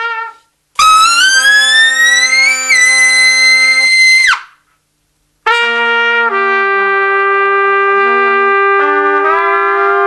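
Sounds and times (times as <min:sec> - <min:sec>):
trumpet high whistle-like note: 0:00.0 - 0:04.6, 0:05.5 - 0:10.0
trumpet holding low note: 0:05.4 - 0:10.0.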